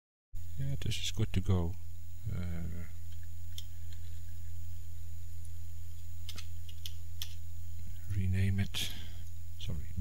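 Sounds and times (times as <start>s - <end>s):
low electrical hum: 0.4s - 10.0s
computer mouse clicking: 6.2s - 7.4s.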